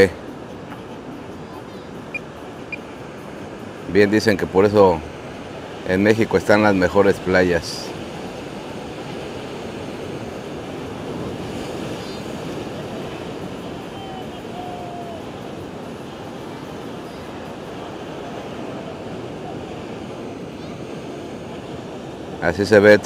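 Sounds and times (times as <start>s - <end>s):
rough ocean surf breaking: 0.0s - 23.0s.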